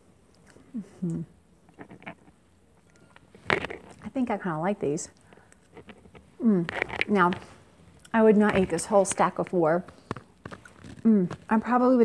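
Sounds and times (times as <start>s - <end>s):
chewing: 1.7s - 4.0s, 5.1s - 8.2s, 9.9s - 11.5s.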